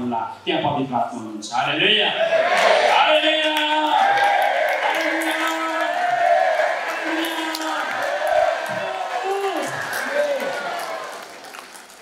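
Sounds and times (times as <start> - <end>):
man preaching into microphone: 2.9 - 4.2, 4.8 - 6.2, 6.8 - 8.0.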